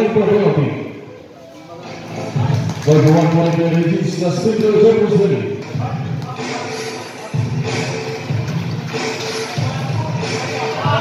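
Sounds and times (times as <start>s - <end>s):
man announcing: 0.0s - 1.1s, 2.8s - 6.6s.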